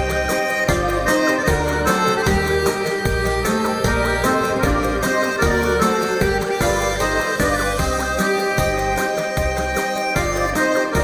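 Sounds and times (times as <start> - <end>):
accordion lead melody: 0.0 - 11.0
folk band with steady bass beat: 0.0 - 11.0.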